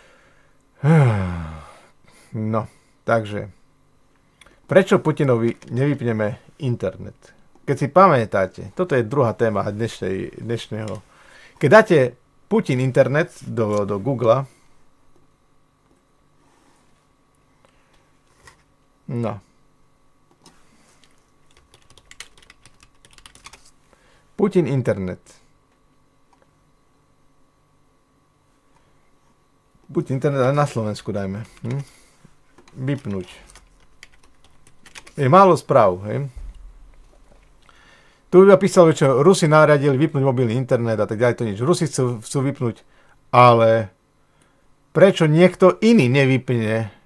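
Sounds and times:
man sighing: 0.0s - 2.4s
keyboard typing: 20.4s - 23.7s, 32.6s - 35.2s.

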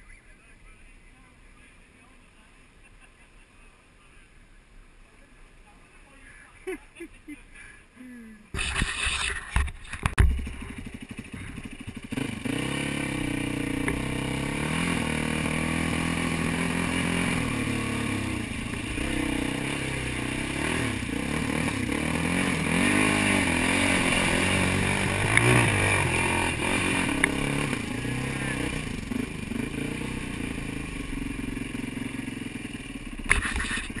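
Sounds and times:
dirt bike engine revving: 8.6s - 34.0s.

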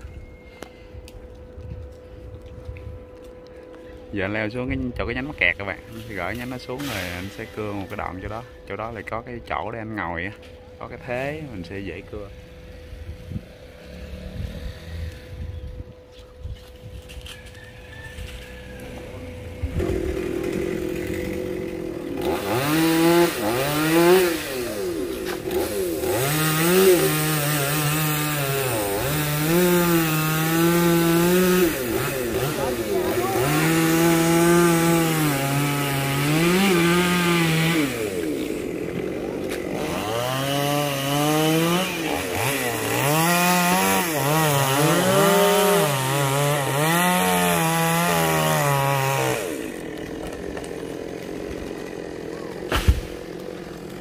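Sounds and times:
chainsaw cutting tree trunk: 5.8s - 8.4s, 11.2s - 15.4s, 17.1s - 54.0s.

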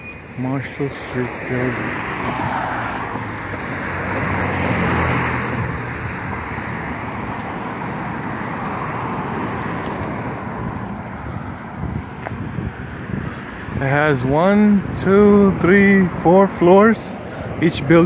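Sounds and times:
car passing close: 0.0s - 18.0s
traffic noise: 0.0s - 18.0s.

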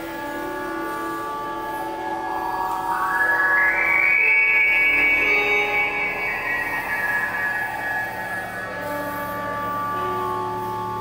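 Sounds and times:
guitar drone music: 0.0s - 11.0s.

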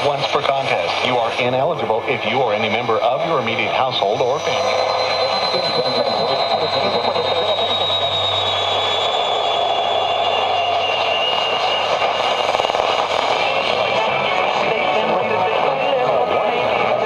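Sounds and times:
radio static hiss: 0.0s - 8.1s, 11.0s - 17.0s
thin heterodyne whistle: 4.2s - 13.7s.

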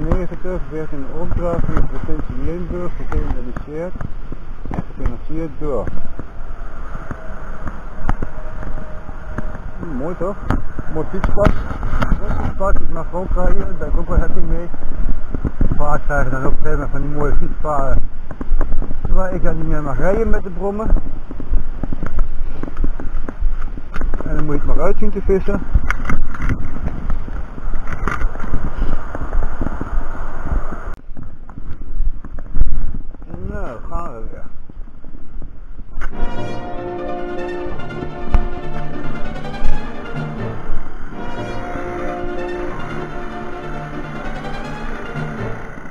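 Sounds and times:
road and engine noise: 0.0s - 45.9s
wind noise on microphone: 0.0s - 45.9s.

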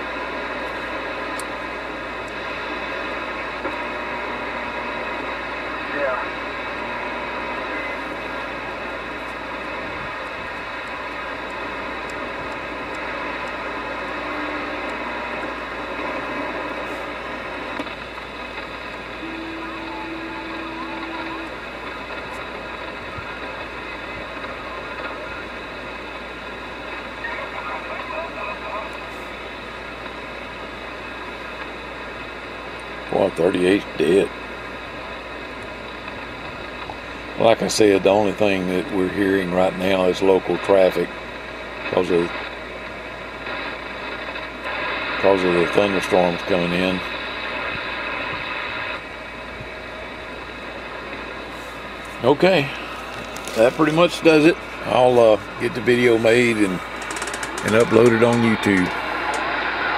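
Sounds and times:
steady carrier tone: 0.0s - 33.0s
radio static hiss: 0.0s - 59.9s
garbled distant voices: 19.4s - 30.0s, 51.4s - 59.5s.

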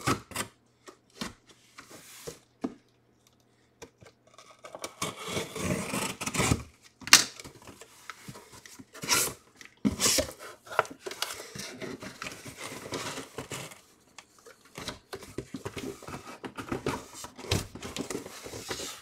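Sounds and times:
cardboard tearing and scraping: 4.6s - 6.8s.

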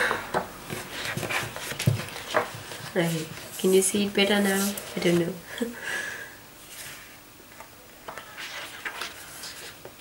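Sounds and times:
woman laughing breathily: 5.5s - 6.4s.

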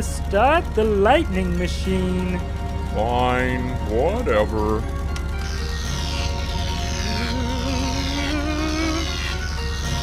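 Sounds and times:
music: 0.0s - 10.0s
steady low hum: 0.0s - 10.0s
rising wavering tone: 1.8s - 10.0s.

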